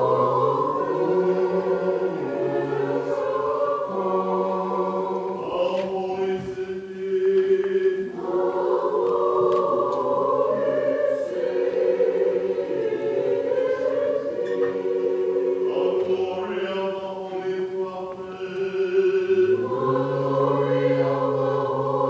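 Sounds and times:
choir singing a hymn a cappella: 0.0s - 22.0s.

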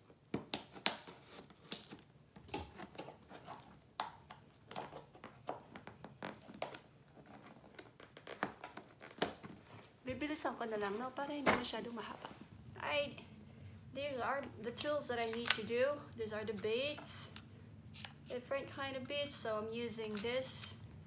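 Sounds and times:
tape and cardboard tearing: 4.7s - 9.6s.

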